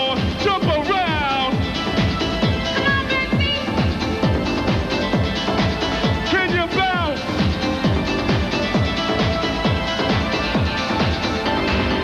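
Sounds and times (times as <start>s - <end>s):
up-tempo dance music: 0.0s - 12.0s.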